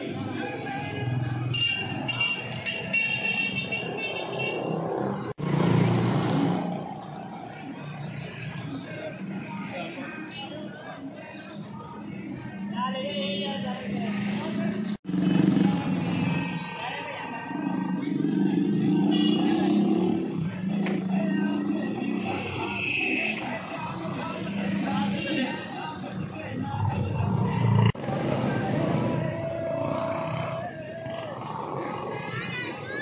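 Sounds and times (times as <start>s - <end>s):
busy street noise: 0.0s - 33.0s
voices: 6.5s - 33.0s.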